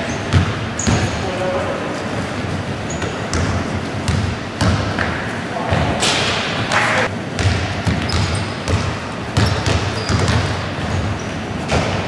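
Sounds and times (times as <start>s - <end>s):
sneaker squeaks: 0.0s - 1.6s, 2.2s - 5.9s, 6.7s - 12.0s
basketball bouncing on wooden floor: 0.3s - 1.1s, 3.0s - 5.1s, 7.4s - 11.1s.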